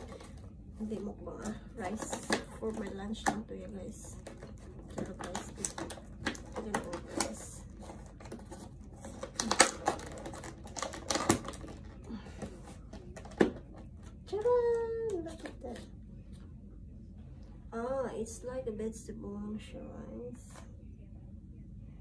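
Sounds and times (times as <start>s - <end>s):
plastic clamshell crackling: 4.0s - 12.1s.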